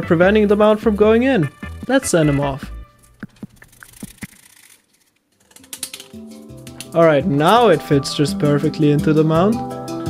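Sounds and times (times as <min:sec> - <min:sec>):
background music: 0:00.0 - 0:04.0, 0:05.7 - 0:10.0.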